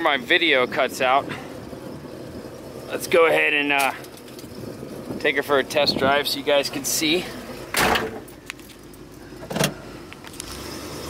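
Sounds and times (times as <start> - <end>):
car engine idling: 0.0 - 11.0
loud clunk: 7.7 - 8.3.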